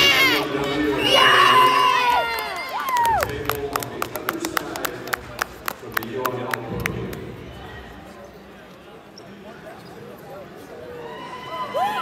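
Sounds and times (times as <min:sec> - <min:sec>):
spectators shouting and cheering: 0:00.0 - 0:03.4, 0:10.7 - 0:12.0.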